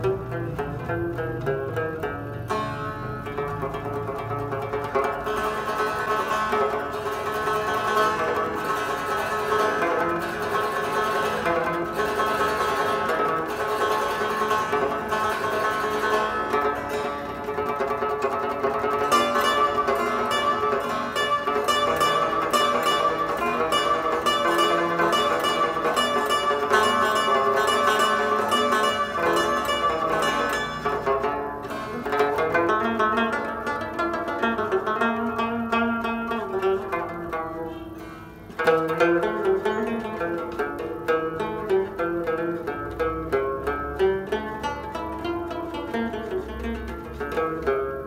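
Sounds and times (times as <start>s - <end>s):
rabab plucked melody: 0.0s - 48.0s.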